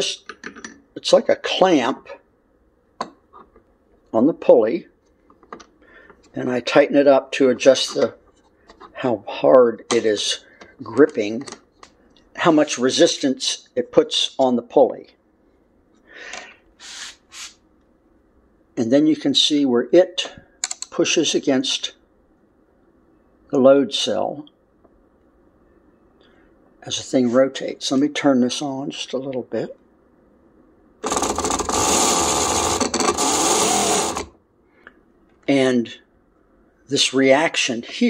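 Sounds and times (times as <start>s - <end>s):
person breathing: 5.8s - 6.3s, 16.0s - 17.1s
person sniffing: 16.1s - 17.6s
sewing machine motor running: 31.0s - 34.3s.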